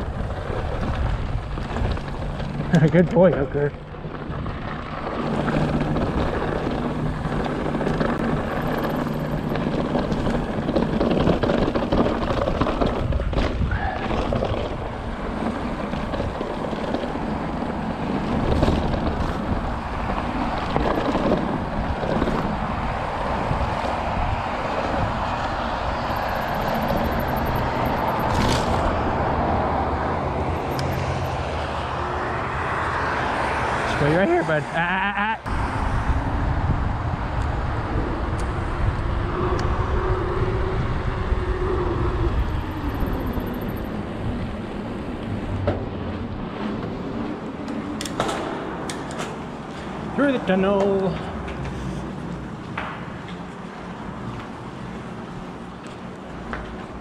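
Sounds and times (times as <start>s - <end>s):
wind on microphone: 0.0s - 2.6s, 3.9s - 32.0s, 35.4s - 48.0s
bike tyre and frame rattle: 0.0s - 31.7s
bike knocking over bumps: 5.1s - 17.1s.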